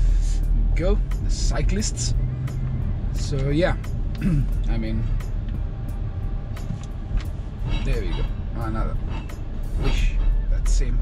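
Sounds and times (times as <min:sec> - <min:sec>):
car engine and tyre rumble: 0:00.0 - 0:11.0
faint music beat: 0:00.0 - 0:11.0.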